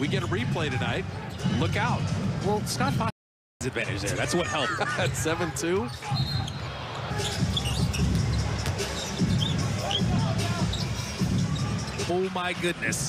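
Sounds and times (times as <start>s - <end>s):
arena noise: 3.6s - 13.0s
shoe squeaks: 5.9s - 12.1s.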